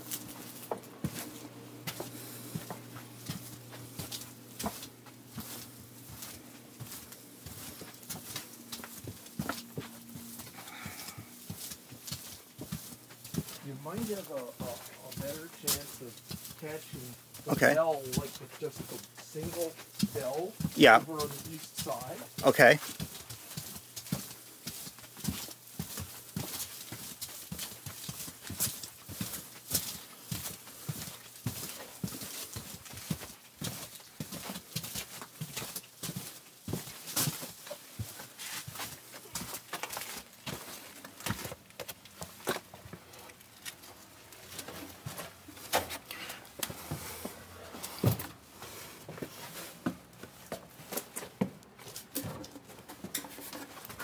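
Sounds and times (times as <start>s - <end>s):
footsteps on wooden boards: 0.0s - 54.0s.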